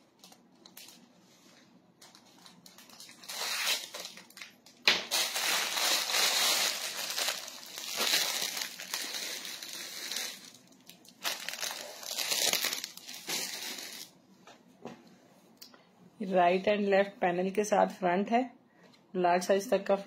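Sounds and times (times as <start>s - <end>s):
plastic bags crinkling: 0.0s - 1.1s, 2.0s - 14.2s.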